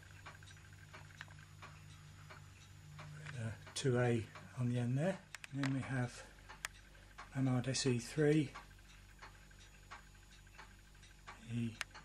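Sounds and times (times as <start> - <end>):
faint regular ticking: 0.0 - 12.0.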